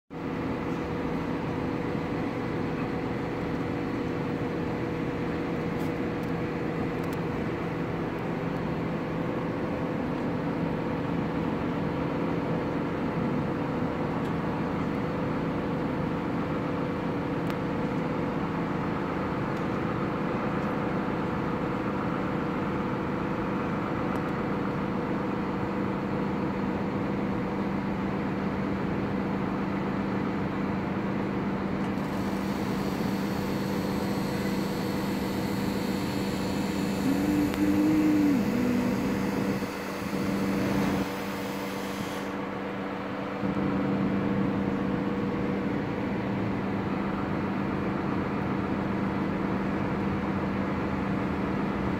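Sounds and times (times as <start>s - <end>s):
machinery drone: 32.0s - 42.7s.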